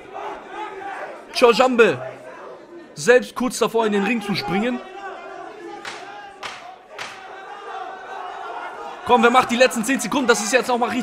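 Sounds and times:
crowd shouting and yelling: 0:00.0 - 0:11.0
sharp smacks: 0:05.8 - 0:07.3.

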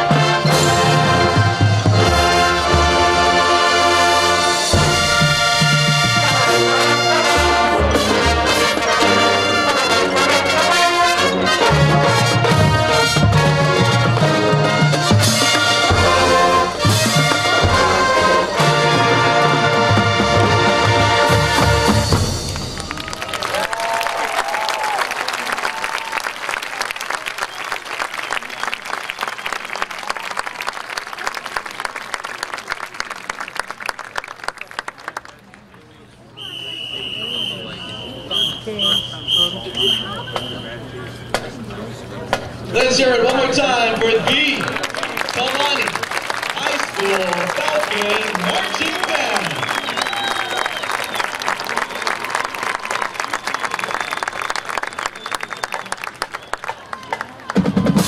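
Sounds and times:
marching band playing: 0:00.0 - 0:23.8, 0:36.5 - 0:56.6, 0:57.4 - 0:58.0
audience applause and cheering: 0:04.2 - 0:35.8, 0:44.2 - 0:58.0.

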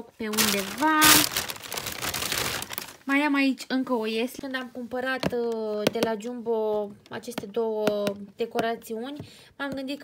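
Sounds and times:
plastic bags crinkling and rustling: 0:00.0 - 0:03.2.

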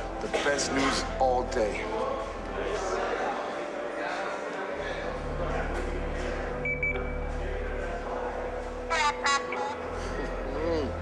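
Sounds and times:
short high beeps: 0:06.6 - 0:07.2.

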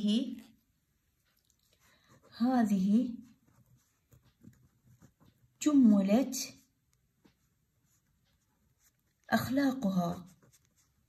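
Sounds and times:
pen writing on paper: 0:03.3 - 0:05.6, 0:07.4 - 0:11.0.

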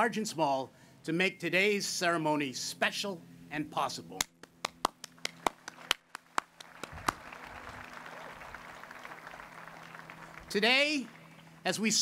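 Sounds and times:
sharp hand claps: 0:04.2 - 0:11.4
crowd applause: 0:05.3 - 0:11.6.

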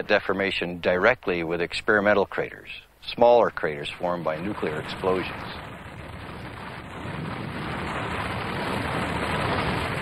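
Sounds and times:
explosion rushing rumble: 0:04.0 - 0:10.0.

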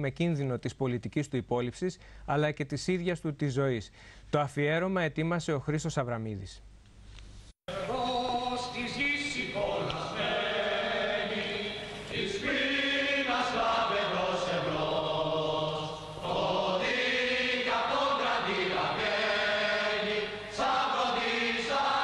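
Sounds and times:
singers breathing: 0:03.9 - 0:04.3, 0:15.9 - 0:16.2, 0:20.3 - 0:20.6
choir singing long notes: 0:07.7 - 0:08.7, 0:09.3 - 0:22.0.

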